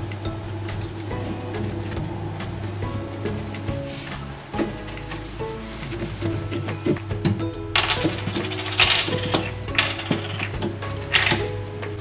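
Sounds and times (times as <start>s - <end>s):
background music: 0.0s - 12.0s
cloth scrubbing metal cooktop: 3.3s - 10.4s.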